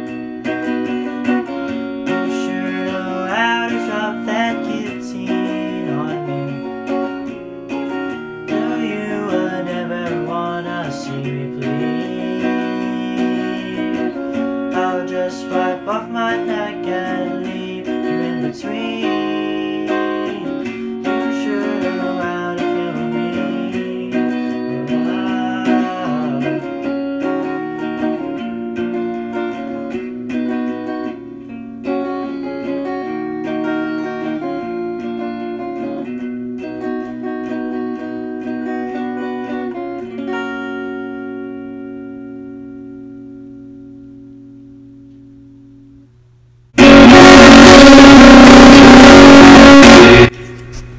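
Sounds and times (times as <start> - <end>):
electric guitar playing: 0.0 - 46.0, 46.8 - 50.6
loud harsh noise burst: 46.8 - 50.4.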